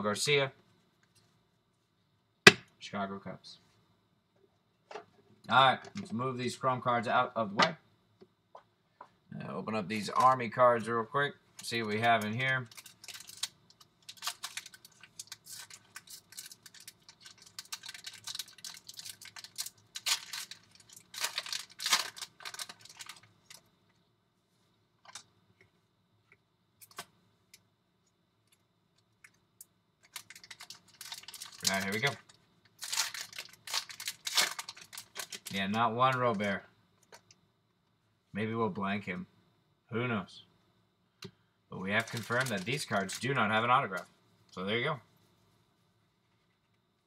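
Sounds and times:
foil wrapper crinkling: 11.6s - 23.7s, 30.0s - 36.5s, 41.9s - 43.5s.

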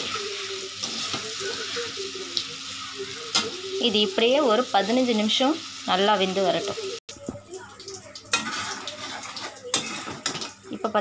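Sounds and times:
food sizzling: 0.0s - 11.0s
metal spoon scraping pan: 8.3s - 10.6s.

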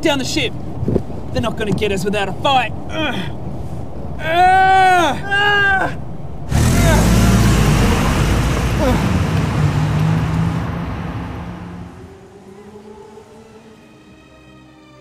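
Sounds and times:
car engine and road rumble: 6.2s - 13.3s.

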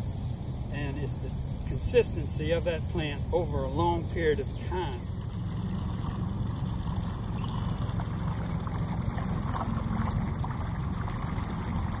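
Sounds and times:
faint trickling water: 0.0s - 12.0s
steady low rumble: 0.0s - 12.0s.

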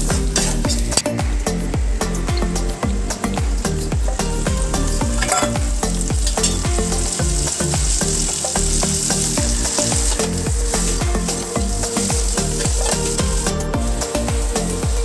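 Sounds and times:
low beat: 0.0s - 15.0s
vegetables sizzling in hot oil: 3.6s - 15.0s.

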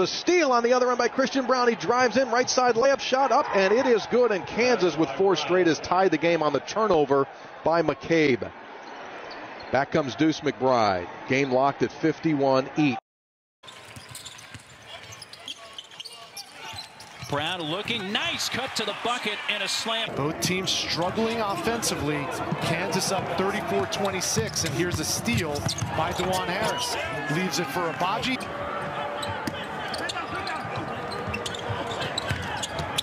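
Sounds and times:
sneakers squeaking: 13.6s - 19.5s, 21.0s - 27.2s, 28.2s - 33.0s.

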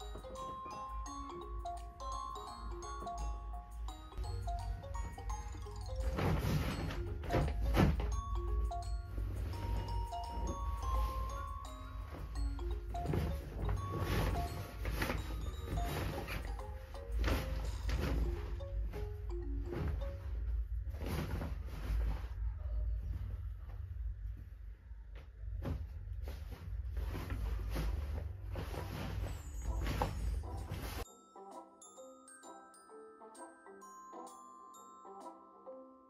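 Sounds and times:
soft background music: 0.0s - 24.8s, 26.1s - 36.0s
clothes rustling: 4.1s - 23.8s, 25.6s - 31.1s.

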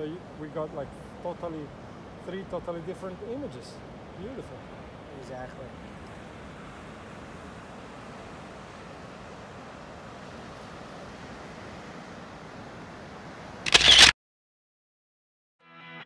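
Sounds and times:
wind: 0.0s - 14.2s
camera shutter: 13.7s - 14.1s.

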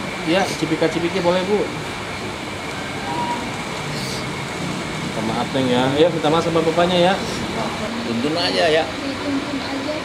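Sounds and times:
electric fan whooshing: 0.0s - 10.0s.

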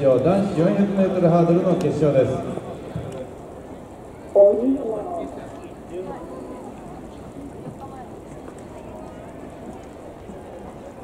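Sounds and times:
outdoor background noise: 0.0s - 11.0s
spectators chattering: 0.0s - 11.0s.

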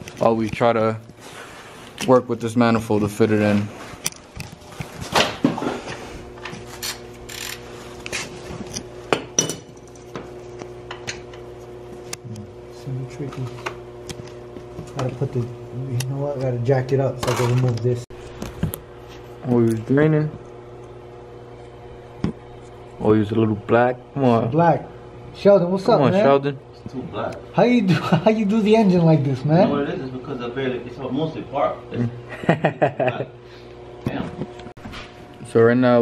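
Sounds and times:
steady low hum: 0.0s - 36.0s.

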